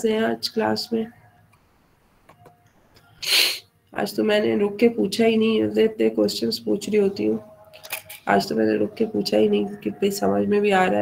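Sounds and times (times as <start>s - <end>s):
person sneezing: 3.2s - 3.6s.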